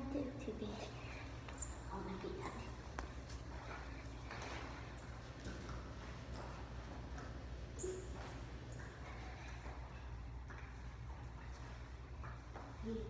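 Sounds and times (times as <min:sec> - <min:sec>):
high squeaks: 0:07.8 - 0:08.4.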